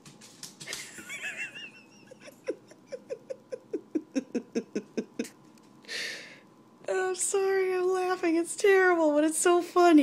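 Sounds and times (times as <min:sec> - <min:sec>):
woman's stifled laughter: 0:00.7 - 0:05.4.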